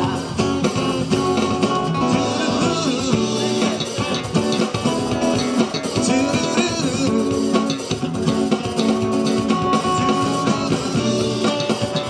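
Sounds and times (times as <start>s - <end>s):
bass guitar: 0.0s - 12.0s
drums: 0.0s - 12.0s
strummed acoustic guitars: 0.0s - 12.0s.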